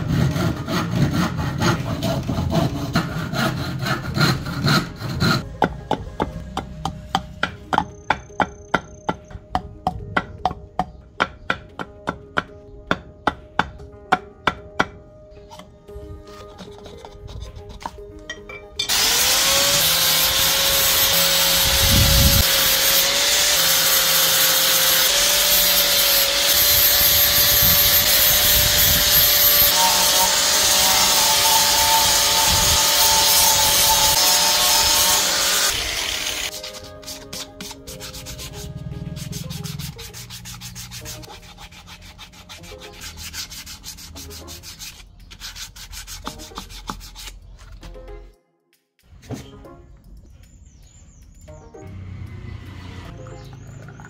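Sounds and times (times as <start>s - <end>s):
angle grinder sanding: 18.9s - 47.4s
hand sanding strokes: 18.9s - 47.4s.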